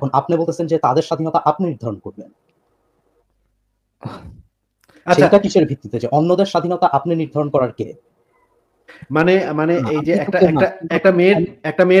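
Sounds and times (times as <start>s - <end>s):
person sighing: 4.0s - 4.5s.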